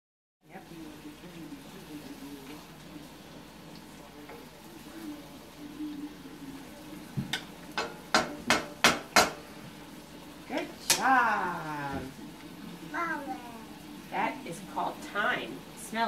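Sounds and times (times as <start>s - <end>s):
mushrooms frying in a pan: 0.4s - 16.0s
utensils knocking on wooden board: 7.2s - 9.4s.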